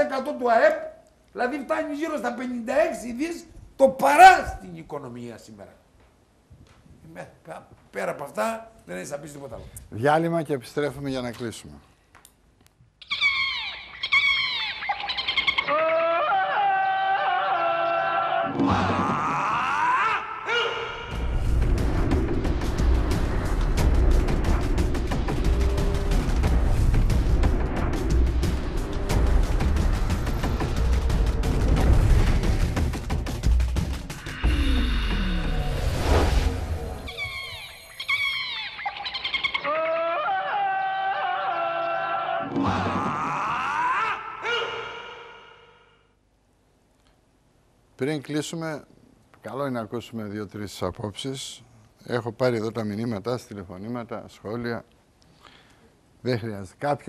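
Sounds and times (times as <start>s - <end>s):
animal-like calls: 13.0s - 16.8s, 36.8s - 40.2s
jungle animal calls: 13.0s - 18.4s, 37.0s - 45.9s.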